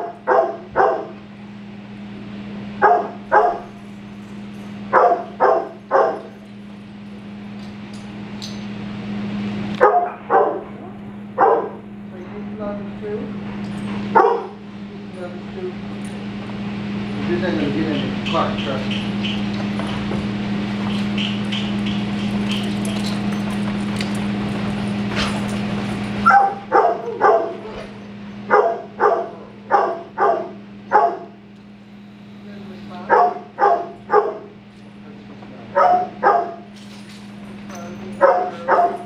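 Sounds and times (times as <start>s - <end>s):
dog barking: 0.0s - 1.2s, 2.8s - 3.8s, 4.9s - 6.4s, 9.8s - 11.9s, 14.1s - 14.6s, 26.2s - 27.8s, 28.5s - 31.4s, 33.1s - 34.6s, 35.7s - 36.7s, 38.2s - 39.0s
room noise hum: 0.0s - 39.0s.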